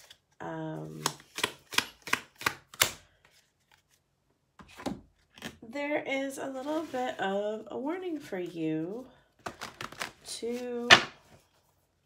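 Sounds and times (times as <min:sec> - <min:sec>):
cards being shuffled: 0:00.0 - 0:04.0, 0:09.4 - 0:11.5.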